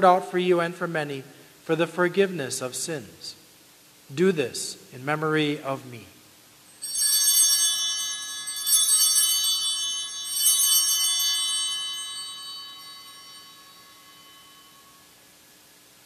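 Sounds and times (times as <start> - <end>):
altar bells jangling: 6.7 - 15.2.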